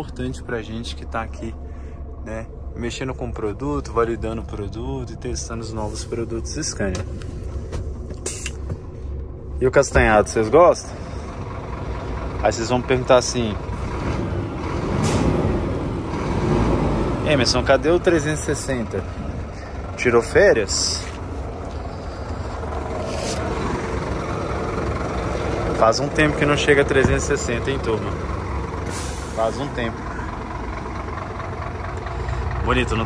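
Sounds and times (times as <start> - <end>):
truck engine idling: 0.0 - 33.0
compressed air hiss: 8.2 - 8.7, 28.9 - 29.4.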